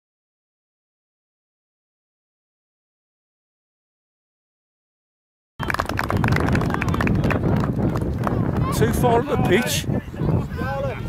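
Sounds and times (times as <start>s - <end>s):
wind buffeting microphone: 5.6s - 11.0s.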